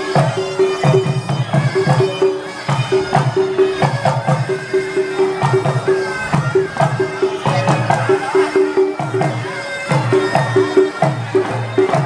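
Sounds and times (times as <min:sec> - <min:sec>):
nasal reedy shawm melody: 0:00.0 - 0:12.0.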